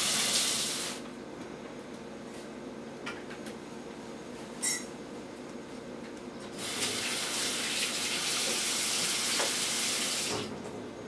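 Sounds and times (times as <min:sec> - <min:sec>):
running water from a tap: 0:00.0 - 0:01.0, 0:06.6 - 0:10.5.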